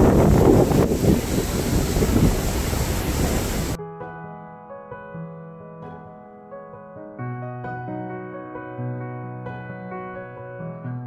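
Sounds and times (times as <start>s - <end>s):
ocean surf: 0.0s - 3.8s
wind buffeting microphone: 0.0s - 3.8s
soft piano music: 3.6s - 11.0s.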